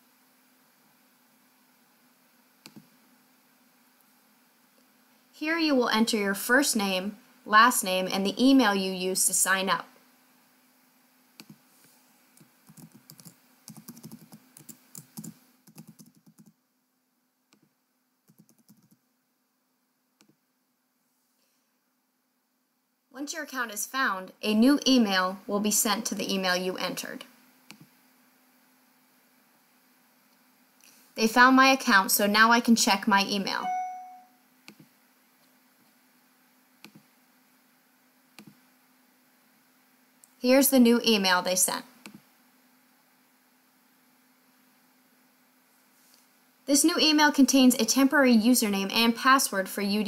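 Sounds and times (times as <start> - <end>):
faint room hiss: 0.0 - 50.0
computer keyboard typing: 12.4 - 16.6, 18.3 - 19.0.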